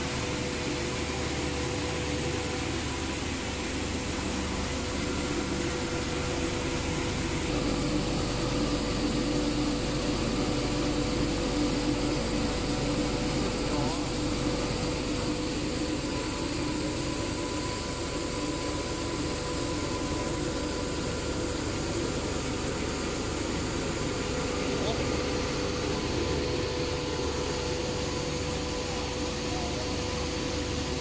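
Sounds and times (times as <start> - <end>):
extrusion machine drone: 0.0 - 31.0.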